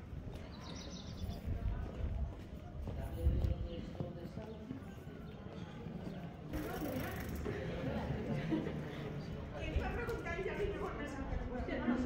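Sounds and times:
footsteps on stone paving: 0.0s - 6.5s
faint voices talking: 0.0s - 12.0s.

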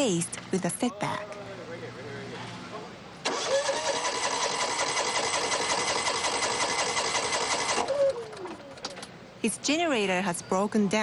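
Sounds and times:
generator starter cranking: 3.2s - 9.2s.

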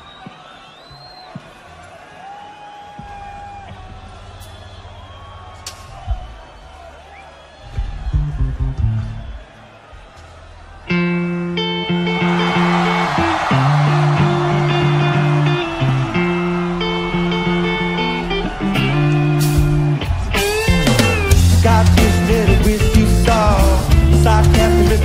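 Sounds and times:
crowd whistling: 0.0s - 25.0s
soft bass guitar notes: 7.8s - 9.4s, 10.9s - 25.0s.

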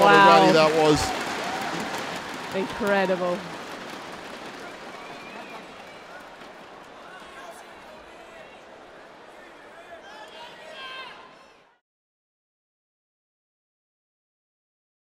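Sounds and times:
people shouting: 0.0s - 2.2s
crowd chatter: 0.0s - 11.8s.

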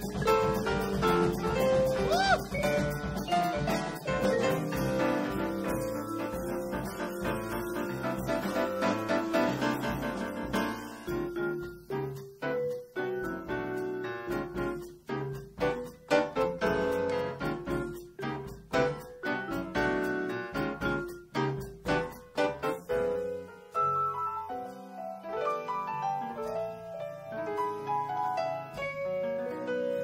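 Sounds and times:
jazz quartet playing: 0.0s - 30.0s.

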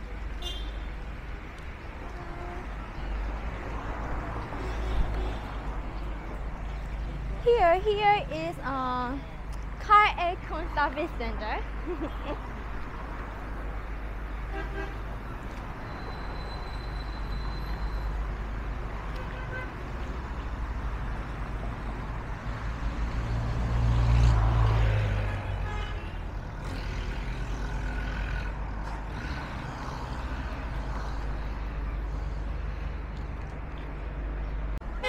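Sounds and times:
rumble of passing cars: 0.0s - 35.0s.

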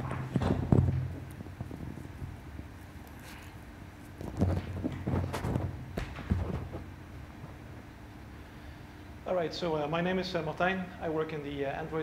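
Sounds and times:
microphone handling thumps: 0.0s - 2.7s, 4.2s - 7.0s.

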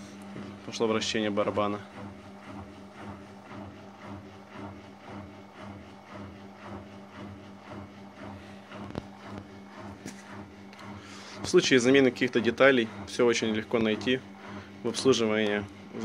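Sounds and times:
drain pump humming: 0.0s - 16.0s
washing machine drum swishing: 0.0s - 16.0s.

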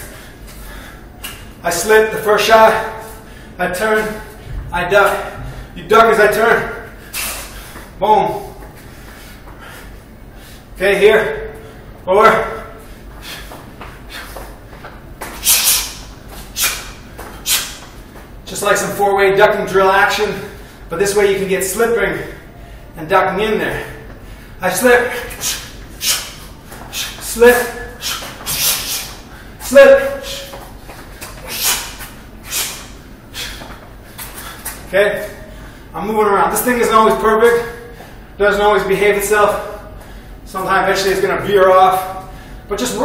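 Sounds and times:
man's sharp hissing exhalations: 7.0s - 7.8s, 15.4s - 17.8s, 25.3s - 27.2s, 27.9s - 29.6s, 31.4s - 34.7s.

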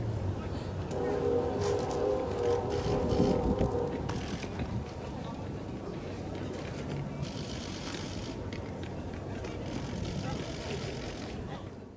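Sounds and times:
faint indistinct voices: 0.2s - 11.9s.

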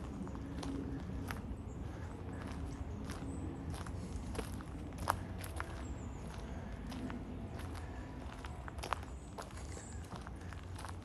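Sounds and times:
footsteps on leaves: 0.0s - 11.0s
steady low rumble: 0.0s - 11.0s.

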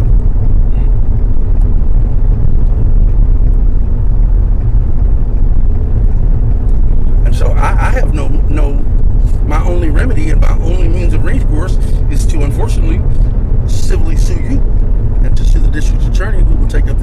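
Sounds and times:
car cabin road and engine rumble: 0.0s - 17.0s.

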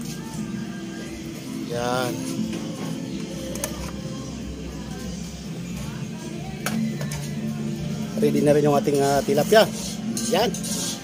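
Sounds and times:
background music with low tones: 0.0s - 11.0s
voice: 1.7s - 2.2s, 8.2s - 9.7s.

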